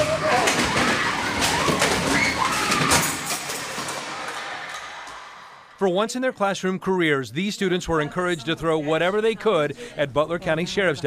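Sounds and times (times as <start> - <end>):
raised voices: 0.0 - 3.2
objects and chairs clattering: 0.0 - 5.3.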